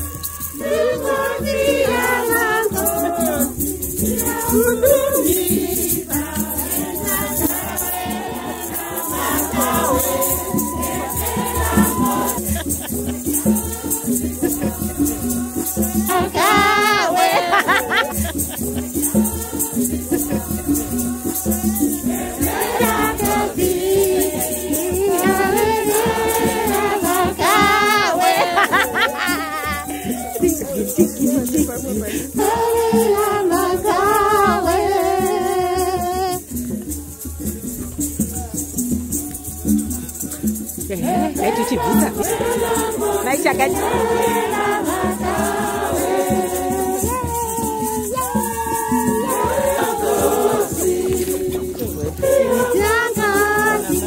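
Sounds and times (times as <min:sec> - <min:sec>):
women singing a hymn: 0:00.0 - 0:30.6, 0:32.0 - 0:36.5, 0:40.9 - 0:54.0
rattles shaken to a beat: 0:00.0 - 0:54.0.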